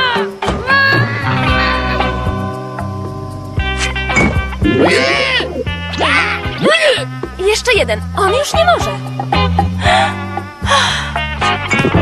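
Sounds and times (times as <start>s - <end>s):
background music: 0.0s - 12.0s
cartoon character vocal noises: 4.6s - 6.7s.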